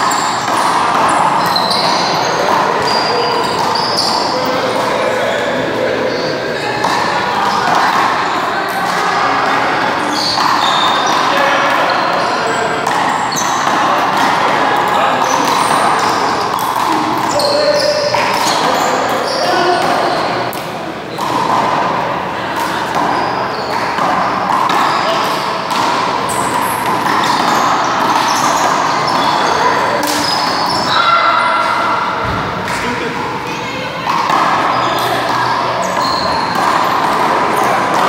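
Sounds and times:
sneakers squeaking on court: 0.0 - 8.4, 9.5 - 21.8, 22.6 - 38.0.

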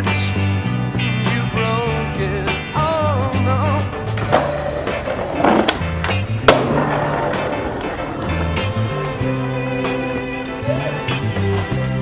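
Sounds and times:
background music: 0.0 - 12.0
skateboard grinding on handrail: 3.8 - 10.1
skateboard landing clack: 4.1 - 9.2.

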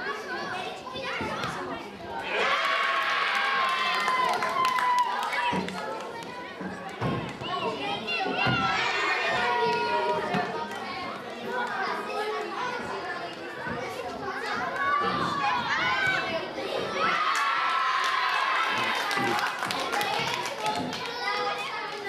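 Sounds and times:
children cheering: 2.2 - 5.6, 17.0 - 22.0
children shouting: 2.2 - 5.8, 14.4 - 22.0.

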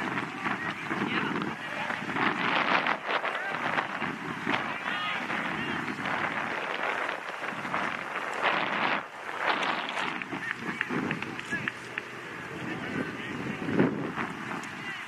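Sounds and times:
wind hiss on microphone: 0.0 - 15.0
distant shouts of players: 0.2 - 6.0.

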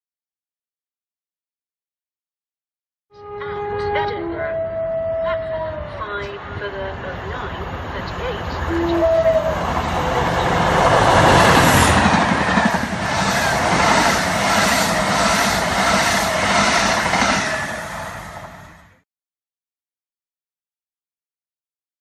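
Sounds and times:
diesel locomotive engine passing: 3.2 - 19.0.

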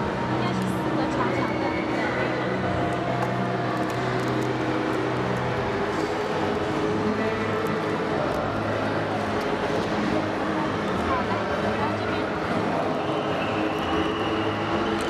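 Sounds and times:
exhibition hall background noise: 0.0 - 15.0.

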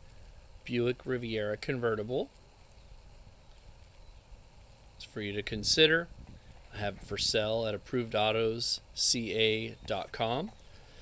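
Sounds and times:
faint outdoor low rumble: 0.0 - 11.0.

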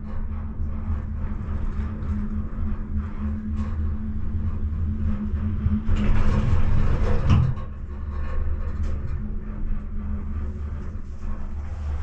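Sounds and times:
gondola cabin low hum: 0.0 - 12.0
rough rumble: 10.2 - 12.0.

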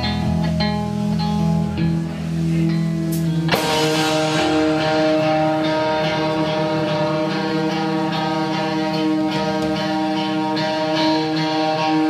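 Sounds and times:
live rock band music: 0.0 - 12.0.

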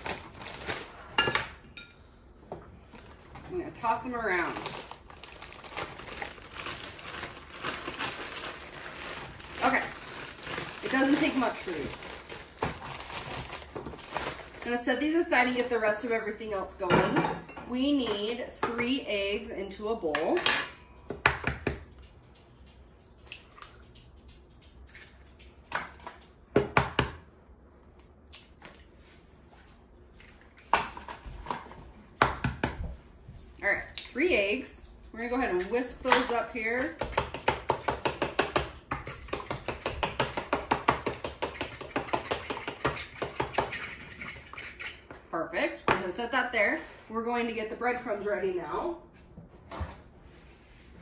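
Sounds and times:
plastic bag crinkling: 0.0 - 1.1, 4.4 - 15.7.

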